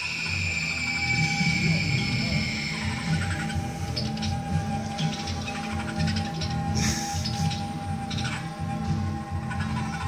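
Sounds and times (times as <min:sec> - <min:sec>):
animal-like yowling: 0:00.0 - 0:10.0
background music: 0:00.0 - 0:10.0.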